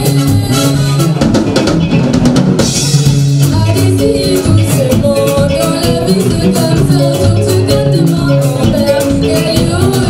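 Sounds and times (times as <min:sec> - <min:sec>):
bass line: 0:00.0 - 0:10.0
live band music: 0:00.0 - 0:10.0.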